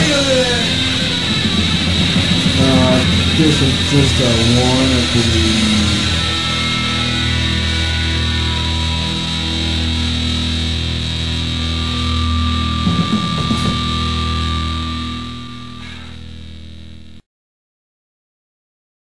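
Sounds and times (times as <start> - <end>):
distorted electric guitar chord ringing: 0.0 - 17.2
high steady tone: 0.0 - 17.2.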